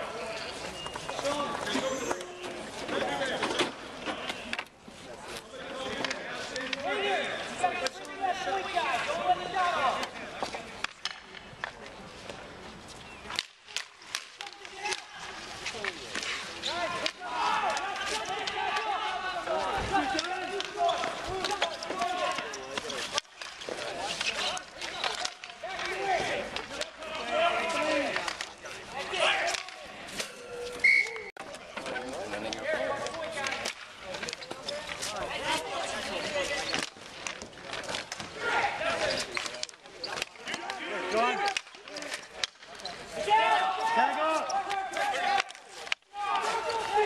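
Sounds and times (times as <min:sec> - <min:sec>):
sticks clacking on ball and pavement: 0:00.0 - 0:47.0
players shouting: 0:05.6 - 0:10.8, 0:13.6 - 0:31.3, 0:32.0 - 0:47.0.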